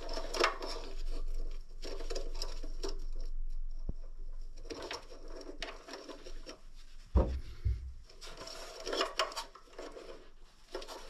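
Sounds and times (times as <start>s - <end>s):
light scraping and rubbing: 0.0s - 11.0s.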